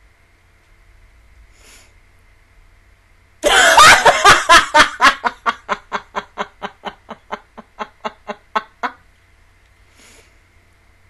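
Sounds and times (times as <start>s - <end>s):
woman laughing breathily: 3.4s - 9.0s.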